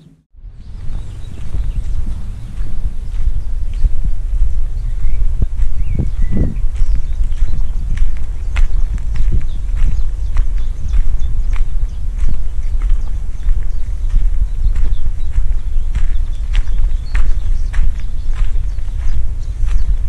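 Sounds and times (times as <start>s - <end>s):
low rumble: 0.3s - 20.0s
footsteps on gravel: 0.6s - 20.0s.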